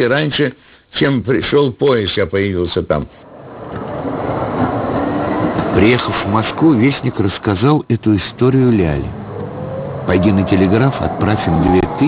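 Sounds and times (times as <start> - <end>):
vehicle rumble: 3.2 - 12.0.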